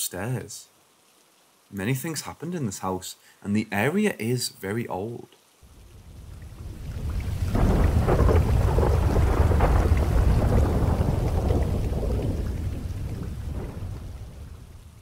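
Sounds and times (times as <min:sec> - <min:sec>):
steady rain: 0:00.0 - 0:15.0
thunder rolling: 0:05.7 - 0:15.0.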